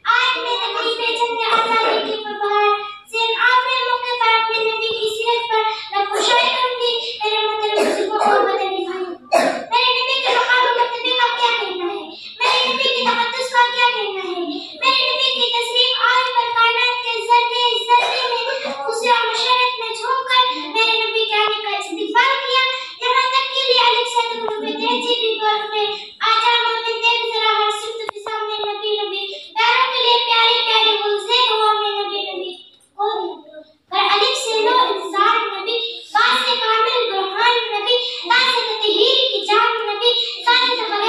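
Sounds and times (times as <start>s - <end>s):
girl chanting into microphone: 0.0s - 41.0s.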